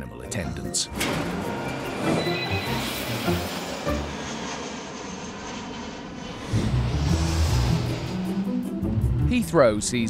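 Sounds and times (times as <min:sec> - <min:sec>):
jet engine rush: 0:00.9 - 0:10.0
theme music with low beat: 0:06.5 - 0:10.0.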